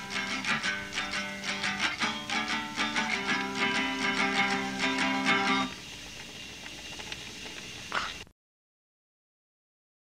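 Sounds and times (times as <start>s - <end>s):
background recording hiss: 0.0s - 8.3s
faint clicks: 5.7s - 8.2s.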